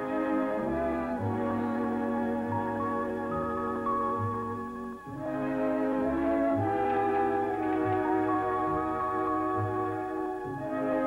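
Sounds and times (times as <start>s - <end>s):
orchestral music with brass chords: 0.0s - 11.0s.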